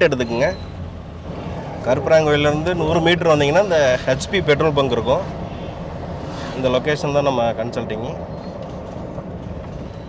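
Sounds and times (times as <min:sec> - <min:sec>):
man talking: 0:00.0 - 0:00.6, 0:01.8 - 0:05.3, 0:06.6 - 0:08.2
car engine and tyres rumbling: 0:00.0 - 0:10.0.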